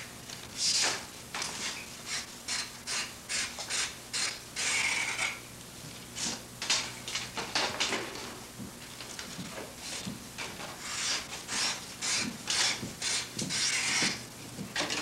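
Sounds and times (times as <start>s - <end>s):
knife scraping wood: 10.8s - 14.2s.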